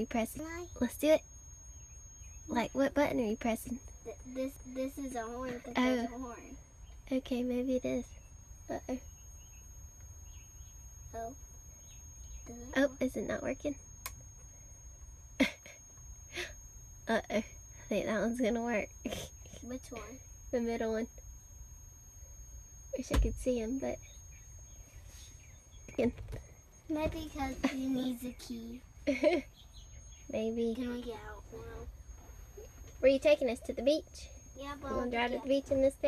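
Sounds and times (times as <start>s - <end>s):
faint high whine: 0.0s - 36.0s
soft high chirps: 0.0s - 36.0s.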